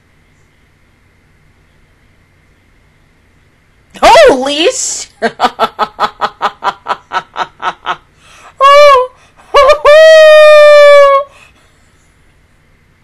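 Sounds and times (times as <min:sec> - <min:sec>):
woman laughing hard: 0:05.2 - 0:08.0, 0:08.6 - 0:11.2
loud high-pitched cries: 0:08.6 - 0:11.4.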